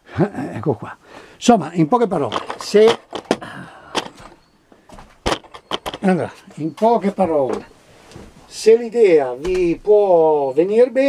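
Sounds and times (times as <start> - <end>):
camera handling knocks and clicks: 2.3 - 6.0.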